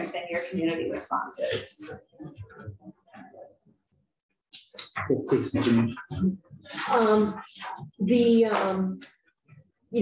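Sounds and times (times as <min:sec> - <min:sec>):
person speaking: 0:00.0 - 0:03.5, 0:04.6 - 0:09.0.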